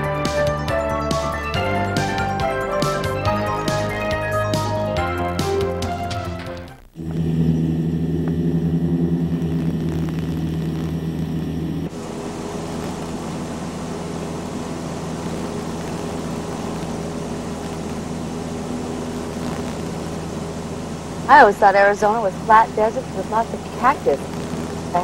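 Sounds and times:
music ending: 0.0 - 9.6
airplane engine and propeller droning: 0.0 - 25.0.

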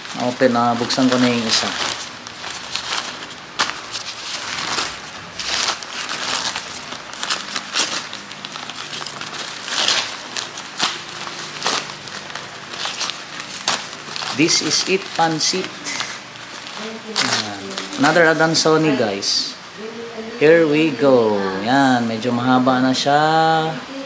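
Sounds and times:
newspaper crinkling and tearing: 0.0 - 19.3.

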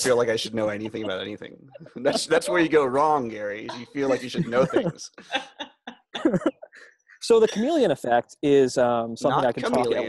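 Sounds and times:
people laughing: 0.0 - 3.0, 3.7 - 7.9, 9.4 - 10.0.

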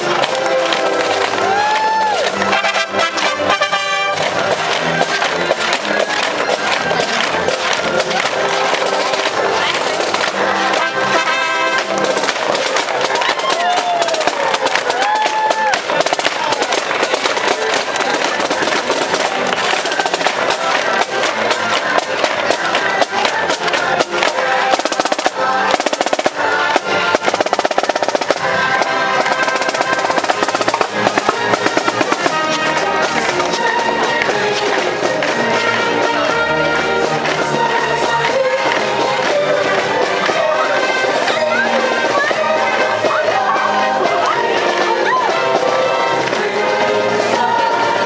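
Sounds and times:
marching band music: 0.0 - 48.0
snare drum rolls: 0.0 - 48.0.

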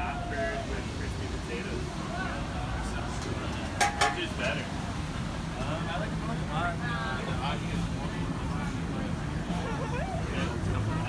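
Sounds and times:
people chatting: 0.0 - 4.8, 5.5 - 11.0
city traffic rumble: 0.0 - 11.0.

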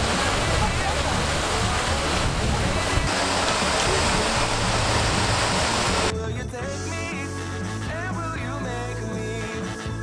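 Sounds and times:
rushing stream and waterfall: 0.0 - 6.1.

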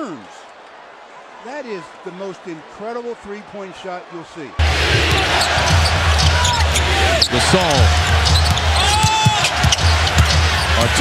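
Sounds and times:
arena crowd rumble: 0.0 - 11.0.

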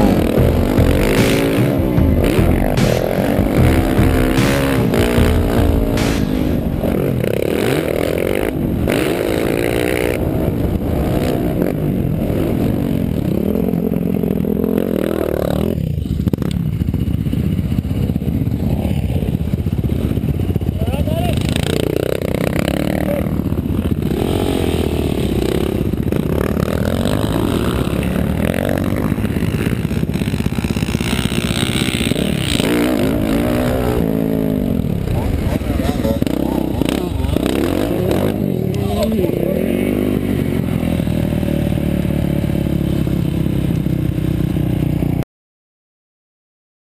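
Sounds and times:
motocross engine revving: 0.0 - 44.6.

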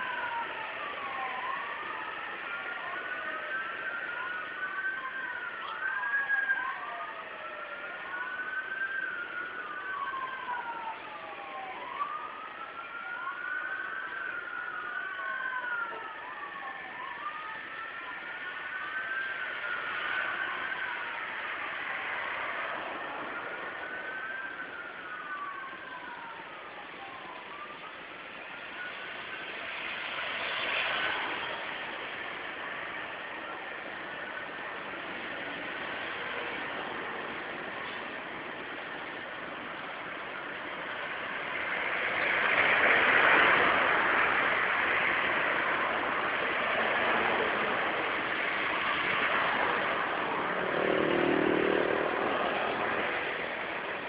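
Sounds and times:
siren gliding up and down: 0.0 - 35.1, 37.8 - 54.0
vehicle engines and road noise: 0.0 - 54.0
vehicle passing: 46.7 - 53.8.

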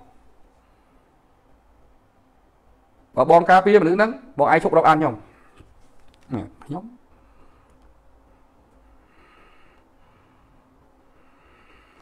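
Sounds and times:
man speaking: 3.2 - 5.3, 6.3 - 7.0
faint clicks: 7.6 - 8.0.

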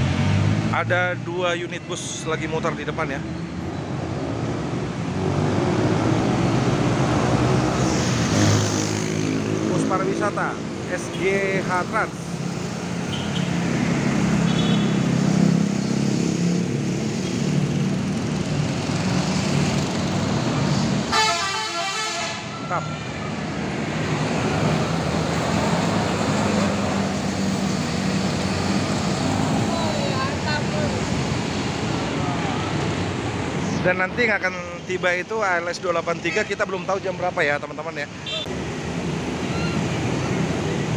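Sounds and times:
road traffic noise: 0.0 - 40.9
motorcycles passing: 4.0 - 21.2, 22.1 - 40.9
bus engine drone: 13.7 - 33.8.

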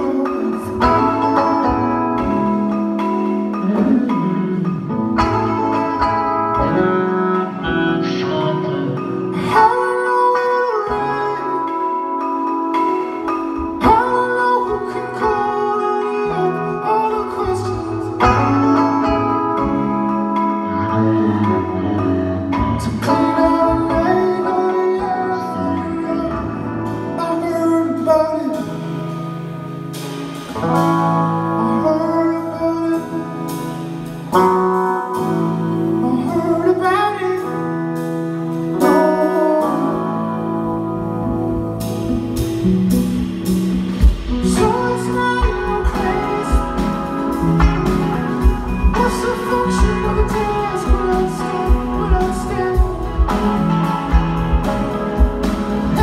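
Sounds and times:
person singing: 0.0 - 29.4, 30.4 - 56.0
live band music: 0.0 - 56.0.

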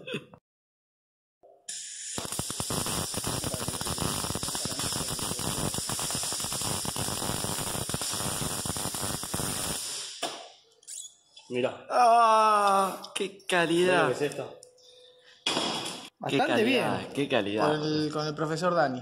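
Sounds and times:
welder arc crackling: 1.7 - 10.4.

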